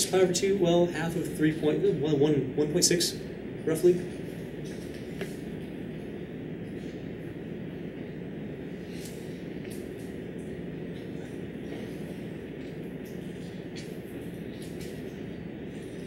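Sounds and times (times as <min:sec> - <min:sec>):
classroom hum: 0:00.0 - 0:16.0.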